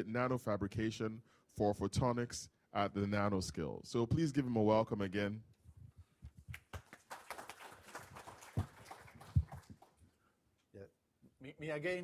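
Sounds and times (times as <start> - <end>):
audience applauding: 6.5 - 10.0.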